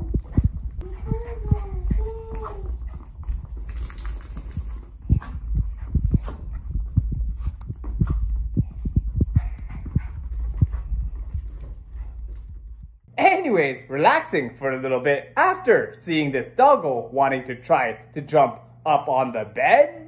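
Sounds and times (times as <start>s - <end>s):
footsteps: 0.0s - 13.0s
paws pattering on floor: 0.1s - 13.0s.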